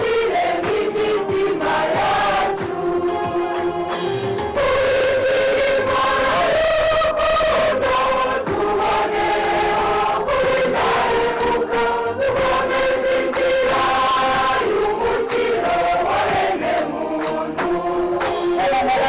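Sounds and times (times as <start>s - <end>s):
church choir singing: 0.0s - 19.0s.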